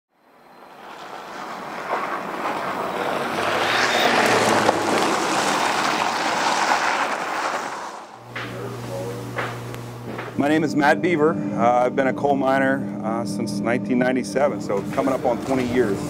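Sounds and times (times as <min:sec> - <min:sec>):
industrial conveyors rushing din: 0:00.3 - 0:08.2.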